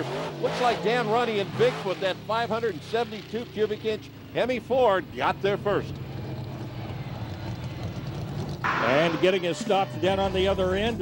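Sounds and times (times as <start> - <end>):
monster truck engine running: 0.0 - 11.0.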